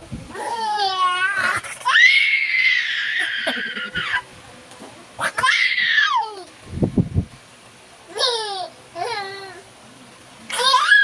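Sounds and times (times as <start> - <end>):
baby squealing: 10.5 - 11.0.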